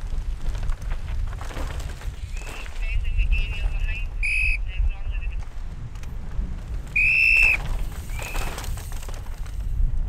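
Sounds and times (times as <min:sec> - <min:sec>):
whistle blasts: 0:04.2 - 0:04.6, 0:07.0 - 0:07.6.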